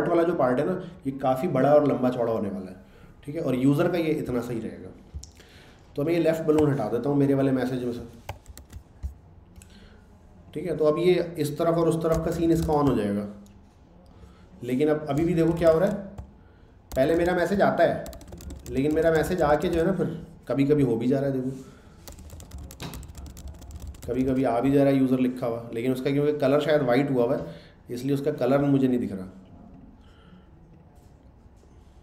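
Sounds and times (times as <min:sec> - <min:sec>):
computer keyboard keystrokes: 0:08.2 - 0:09.2, 0:12.1 - 0:13.0, 0:15.1 - 0:20.0, 0:22.0 - 0:24.9.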